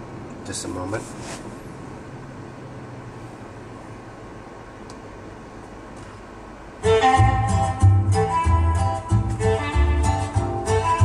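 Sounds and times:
car cabin hum and hiss: 0.0 - 7.2
air conditioning running: 0.0 - 11.0
music from car radio: 6.8 - 11.0.

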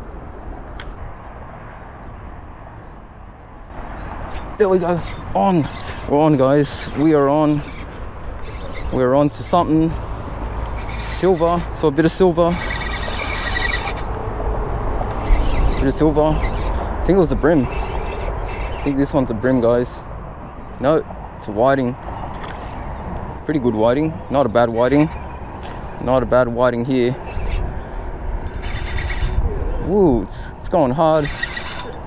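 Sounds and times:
wind rumbling on microphone: 0.0 - 23.5, 24.1 - 32.0
fishing reel ticking: 4.3 - 9.0, 10.7 - 14.1, 15.2 - 19.1, 24.7 - 25.2, 28.5 - 29.4, 31.1 - 32.0.

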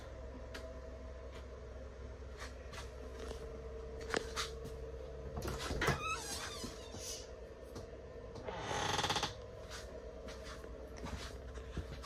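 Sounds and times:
door creaking open: 5.4 - 7.1, 8.4 - 9.4.

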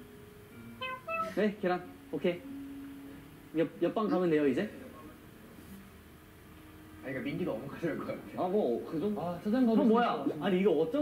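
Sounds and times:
long steady hummed tone: 0.0 - 9.8
short pitch-bending vocal sounds: 0.8 - 1.5.

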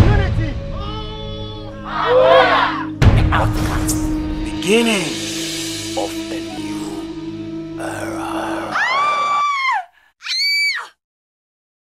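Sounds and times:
music track: 0.0 - 8.7
person screaming: 1.9 - 2.9, 7.8 - 11.0.

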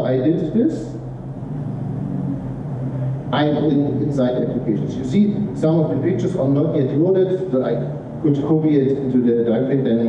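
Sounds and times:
low hum: 0.0 - 9.2.

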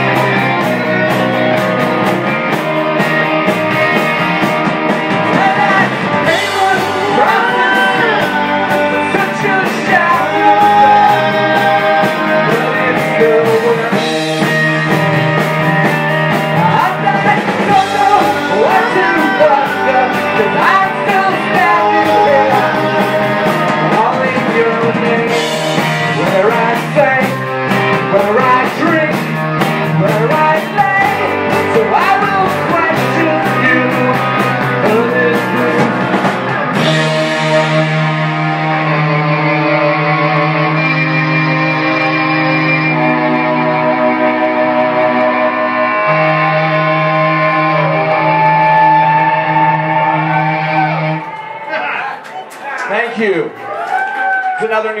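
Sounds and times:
male lead vocals: 0.0 - 51.6
sustained electric guitar chords: 0.0 - 51.6
live indie rock band: 0.0 - 51.7.

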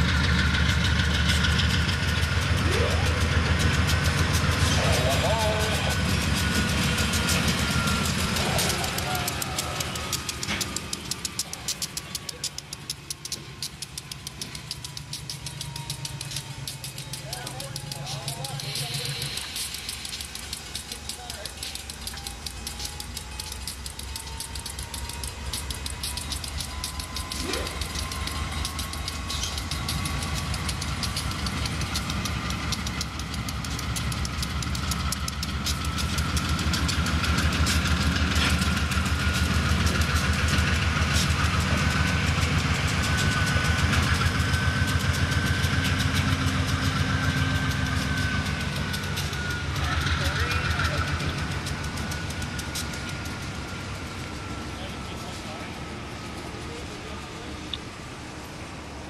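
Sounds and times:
diesel locomotive rumbling: 0.0 - 59.0
thin rising whine: 0.0 - 59.0
train wheels clattering on rails: 0.0 - 59.0.

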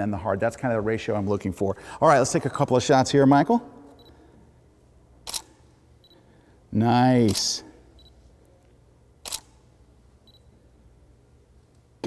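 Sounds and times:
camera shutter click: 5.2 - 5.7, 7.3 - 7.5, 9.2 - 9.6.

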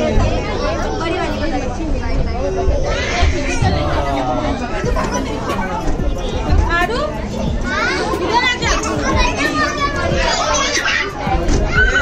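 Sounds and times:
children's voices: 0.0 - 12.0
people chattering and calling out: 0.0 - 12.0.

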